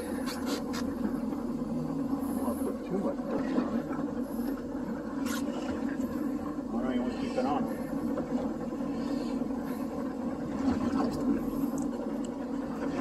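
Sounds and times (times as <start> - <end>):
boat engine humming: 0.0 - 13.0.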